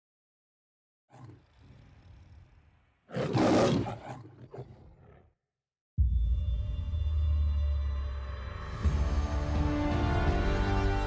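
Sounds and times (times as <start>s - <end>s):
lion roaring and growling: 1.1s - 5.3s.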